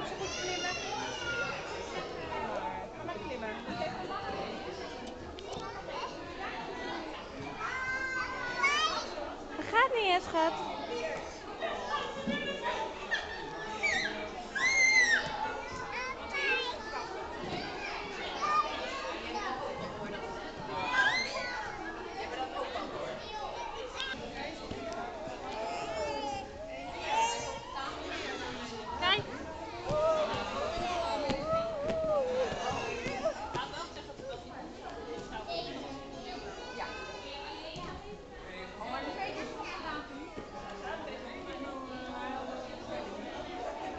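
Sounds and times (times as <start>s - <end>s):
children playing and calling out: 0.0s - 2.5s, 3.8s - 9.6s, 10.5s - 34.2s, 34.9s - 38.2s
chatter of children and adults: 0.0s - 43.9s.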